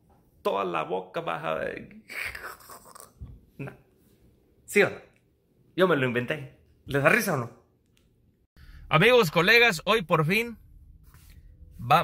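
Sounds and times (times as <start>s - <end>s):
man speaking: 8.9s - 10.6s, 11.8s - 12.0s.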